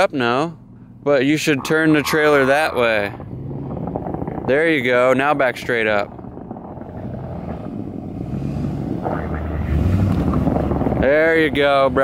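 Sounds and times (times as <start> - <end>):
suv engine low rumble: 0.0 - 12.0.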